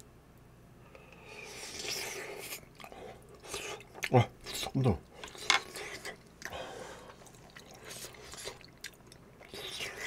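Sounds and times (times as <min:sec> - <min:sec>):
chewing with wet mouth sounds: 0:01.3 - 0:10.0.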